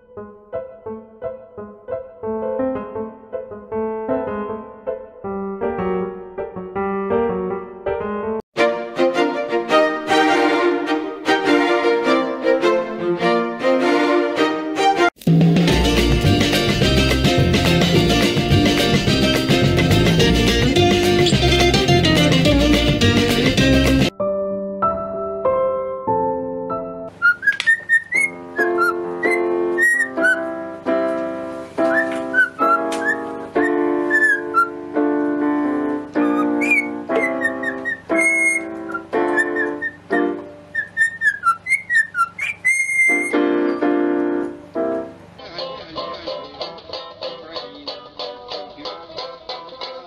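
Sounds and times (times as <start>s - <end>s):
piano notes: 0.0s - 45.6s
cockatiel whistling a tune: 27.2s - 30.5s, 31.8s - 34.8s, 36.2s - 43.5s.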